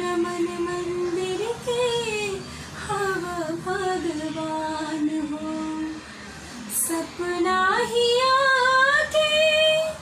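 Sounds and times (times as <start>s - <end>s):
young woman singing unaccompanied: 0.0s - 6.1s, 6.7s - 10.0s.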